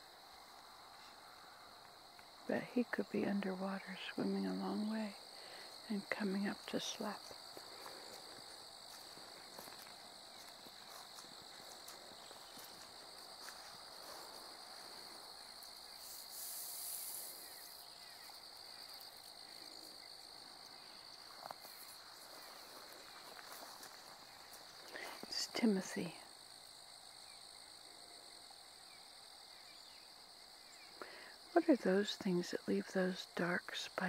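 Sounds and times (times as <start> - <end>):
crickets chirring: 0.0 - 34.0
grass rustling: 5.2 - 26.0.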